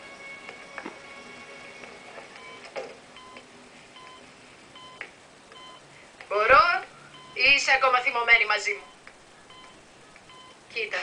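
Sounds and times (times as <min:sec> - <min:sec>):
patient monitor beeping: 0:00.0 - 0:05.9, 0:06.9 - 0:07.8, 0:08.7 - 0:10.7.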